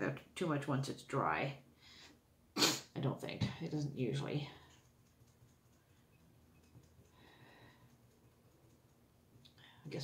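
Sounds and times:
soft breathy sound: 7.0s - 8.1s.

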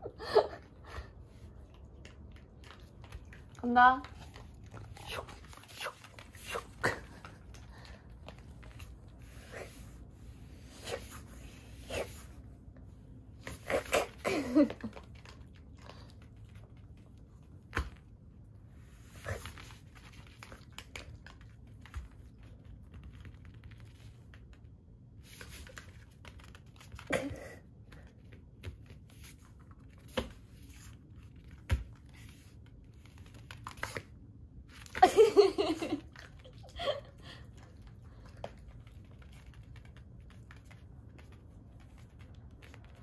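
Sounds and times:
low room hum: 0.0s - 43.0s
dog claws clicking on tile floor: 0.8s - 9.7s, 13.3s - 43.0s
dog claws clicking on hard floor: 1.4s - 9.0s, 19.2s - 24.7s, 37.5s - 43.0s.

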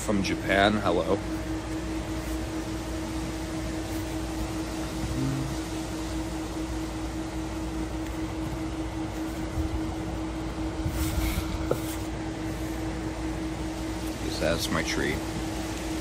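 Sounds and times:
low machine hum: 0.0s - 16.0s.

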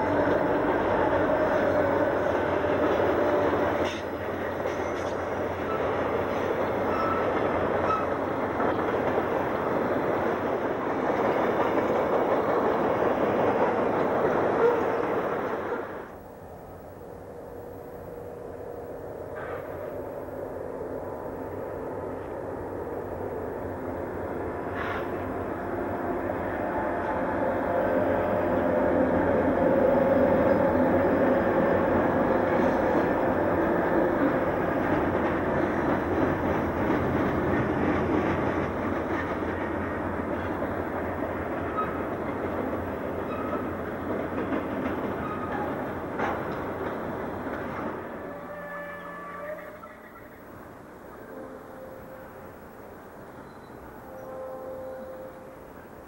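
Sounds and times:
freight train crossing steel bridge: 0.0s - 56.0s.

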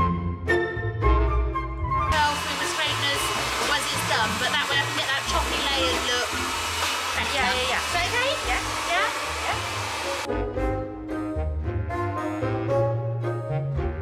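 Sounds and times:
background music: 0.0s - 14.0s
hair dryer blowing: 2.1s - 10.3s.

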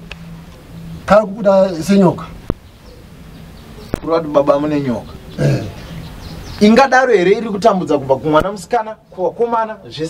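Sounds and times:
man talking: 1.1s - 2.4s, 3.9s - 5.8s, 6.6s - 10.0s.

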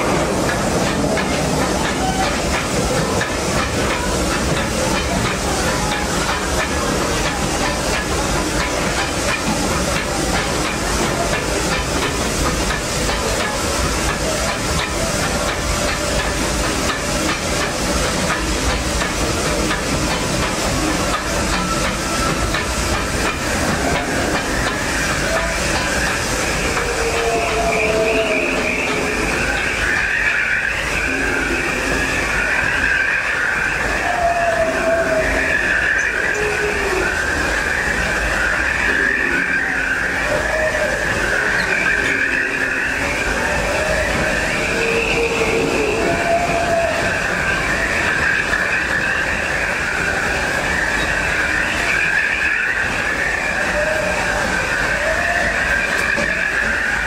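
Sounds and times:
constant high squeal: 0.0s - 57.0s
steam train rumbling on track: 0.0s - 57.0s.

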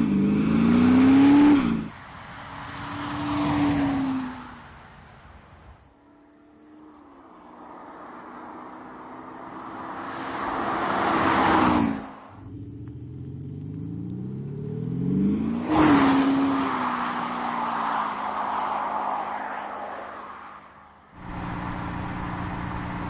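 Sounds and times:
road noise: 0.0s - 23.0s
car driving past: 6.2s - 23.0s
engine accelerating: 6.6s - 16.6s, 21.2s - 23.0s.

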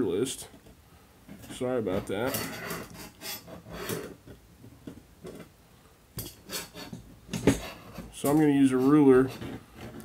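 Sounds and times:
metal parts clicking and scraping: 1.3s - 4.3s, 6.2s - 10.0s.

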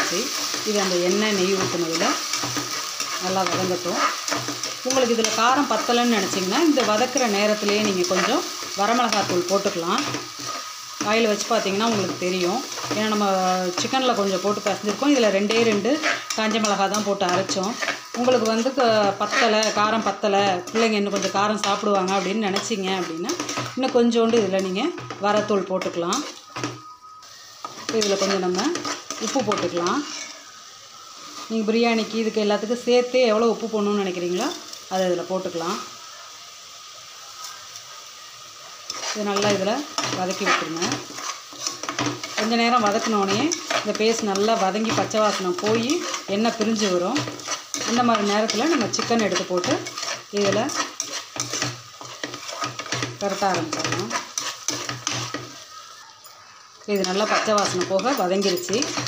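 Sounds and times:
metal spatula scraping pot: 0.0s - 30.5s, 38.9s - 56.0s, 56.9s - 59.0s
paste sizzling in oil: 0.0s - 59.0s
metal spoon stirring: 0.3s - 30.5s, 38.9s - 59.0s.

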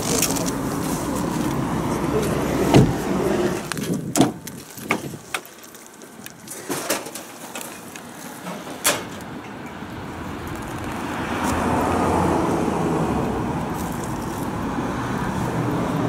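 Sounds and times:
passing traffic: 0.0s - 16.0s
car door clicks and knocks: 2.7s - 3.0s.

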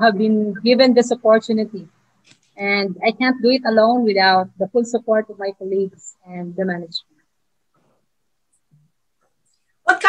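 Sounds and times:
woman speaking: 0.0s - 2.0s, 2.6s - 7.1s.

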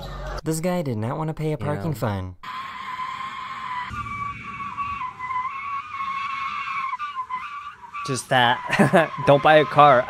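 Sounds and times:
wheel clamp screeching and scraping: 2.4s - 10.0s.

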